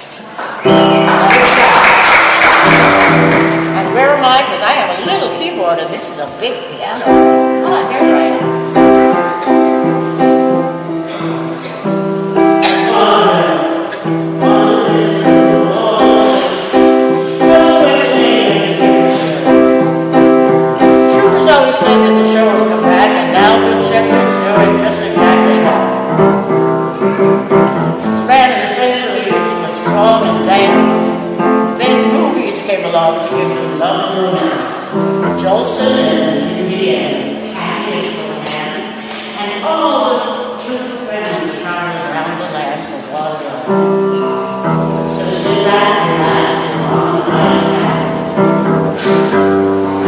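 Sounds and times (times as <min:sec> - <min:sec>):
piano chords: 0:00.0 - 0:50.0
woman singing into microphone: 0:12.7 - 0:19.9, 0:45.1 - 0:48.2.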